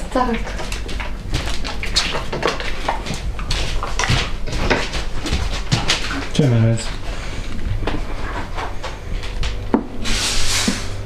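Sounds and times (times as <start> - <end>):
steady low hum: 0.0 - 11.0
knocks and clatter of dishes: 0.6 - 6.5.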